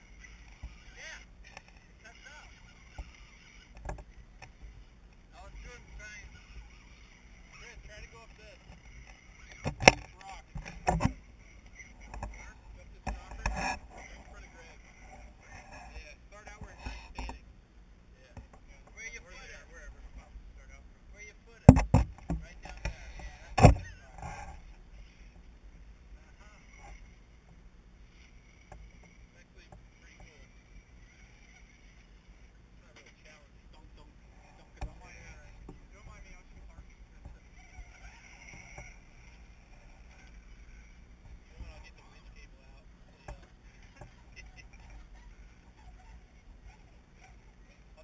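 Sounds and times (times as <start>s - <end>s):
faint voices: 0.0s - 17.5s, 18.1s - 27.3s, 28.1s - 48.0s
sharp knocks: 21.7s - 22.4s.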